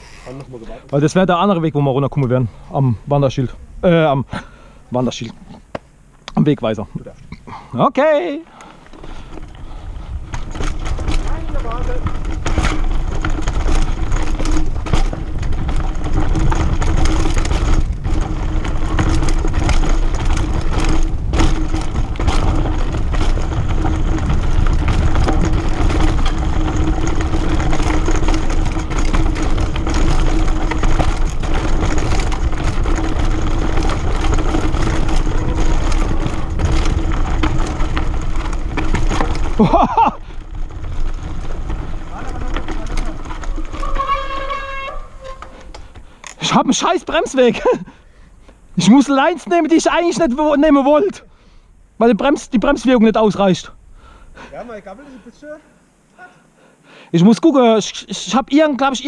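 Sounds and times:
bike rattling and knocking: 0:08.1 - 0:48.0, 0:48.6 - 0:51.3.

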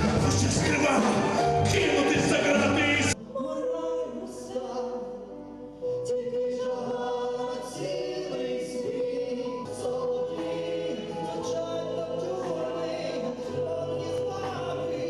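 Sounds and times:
amplified backing music: 0:00.0 - 0:15.0
choral backing vocals: 0:00.0 - 0:15.0
singers on microphones: 0:00.0 - 0:15.0.

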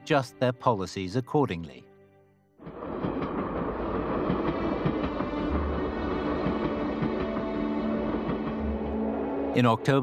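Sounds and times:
train wheels on rails: 0:02.6 - 0:09.5.

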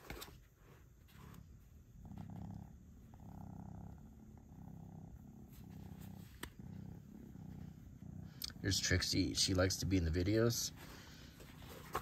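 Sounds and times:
cat purring: 0:00.4 - 0:12.0.

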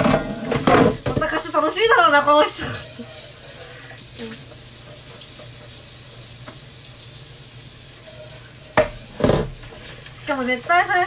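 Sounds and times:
steady watery hiss: 0:02.2 - 0:11.0.

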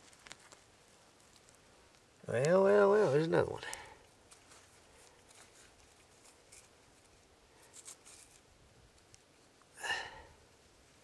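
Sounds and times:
fingers scratching dry soil: 0:02.3 - 0:09.2.

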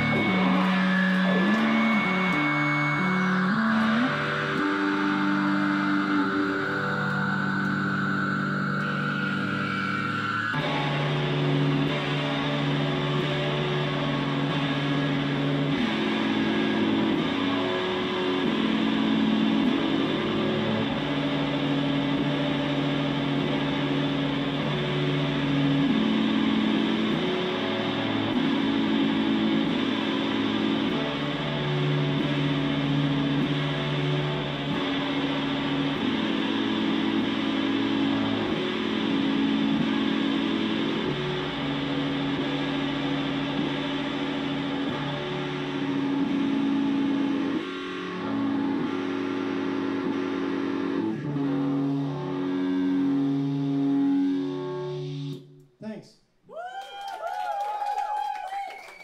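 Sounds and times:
electric guitars droning chords: 0:00.0 - 0:55.6.

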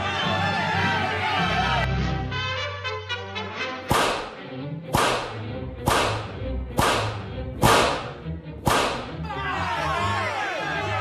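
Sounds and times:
low background music: 0:00.0 - 0:11.0
whip cracks: 0:03.9 - 0:09.1
crowd hubbub: 0:09.2 - 0:11.0.

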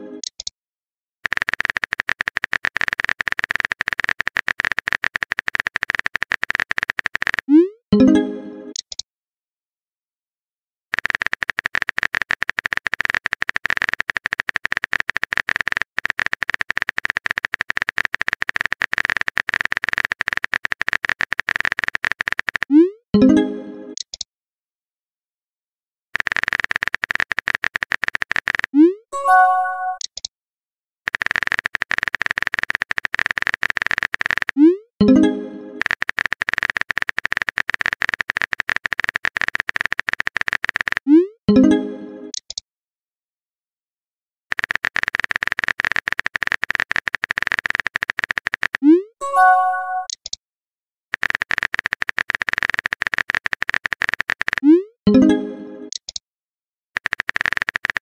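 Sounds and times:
phone keyboard typing clicks: 0:00.2 - 0:00.5, 0:01.2 - 0:07.6, 0:08.7 - 0:09.0, 0:10.9 - 0:22.8, 0:24.0 - 0:24.3, 0:26.2 - 0:30.3, 0:31.1 - 0:41.2, 0:44.5 - 0:50.4, 0:51.2 - 0:55.3, 0:55.9 - 0:56.2, 0:57.0 - 0:58.0.

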